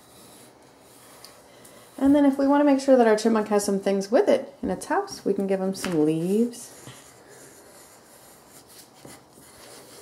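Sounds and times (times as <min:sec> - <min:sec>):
pencils scratching on paper: 0:00.0 - 0:02.8, 0:06.2 - 0:10.0.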